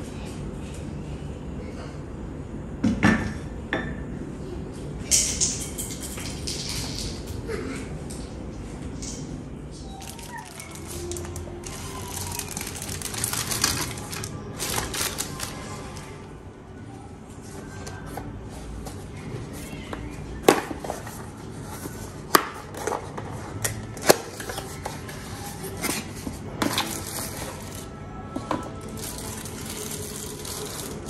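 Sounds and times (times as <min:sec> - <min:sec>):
soft background music: 0:08.3 - 0:31.0.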